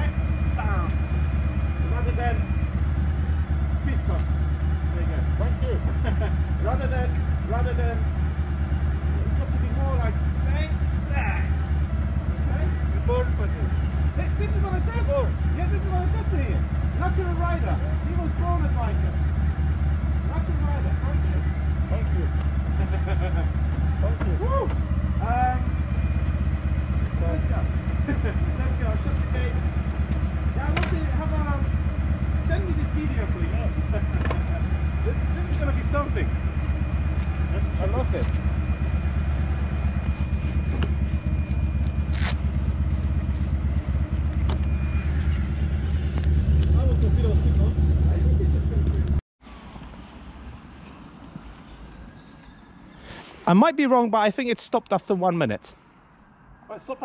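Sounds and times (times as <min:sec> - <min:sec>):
motorcycle engine idling: 0:00.0 - 0:49.2.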